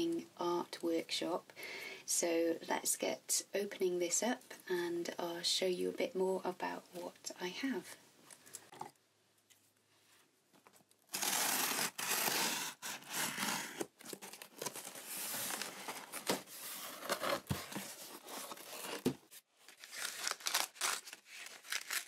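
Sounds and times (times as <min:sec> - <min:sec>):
cardboard and paper rustling: 0:10.5 - 0:22.0
scissors ripping packing tape: 0:11.1 - 0:14.4, 0:19.7 - 0:22.0.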